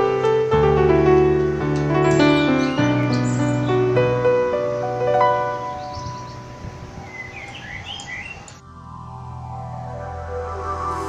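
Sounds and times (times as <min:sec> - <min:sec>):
soft instrumental music: 0:00.0 - 0:07.4
birds chirping: 0:01.1 - 0:08.6.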